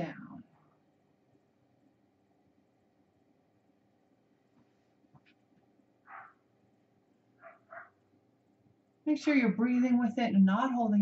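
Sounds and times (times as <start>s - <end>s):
faint short animal sounds: 6.1s - 6.4s, 7.4s - 8.0s.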